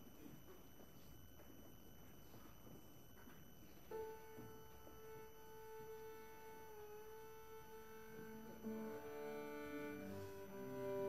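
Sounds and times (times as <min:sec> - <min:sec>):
long violin note: 0:03.9 - 0:11.0
bowed cello notes: 0:04.9 - 0:11.0.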